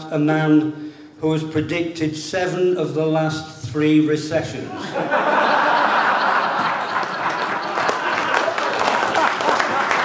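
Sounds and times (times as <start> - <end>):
audience laughing: 4.6 - 10.0
audience clapping: 5.5 - 10.0.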